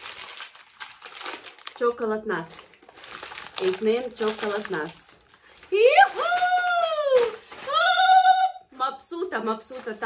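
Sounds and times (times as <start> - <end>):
plastic bags crinkling: 0.0 - 10.0.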